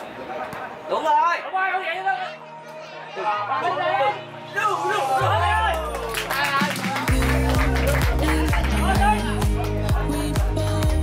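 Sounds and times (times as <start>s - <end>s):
person singing: 6.6s - 11.0s.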